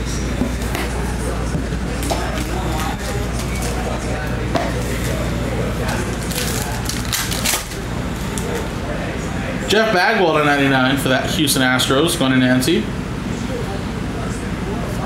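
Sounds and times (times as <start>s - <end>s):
steady electrical hum: 0.0s - 15.0s.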